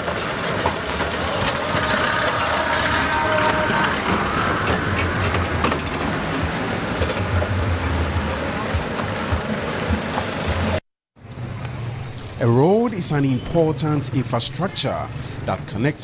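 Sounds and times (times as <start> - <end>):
faint street noise: 0.0 - 16.0
vehicles passing: 0.0 - 16.0.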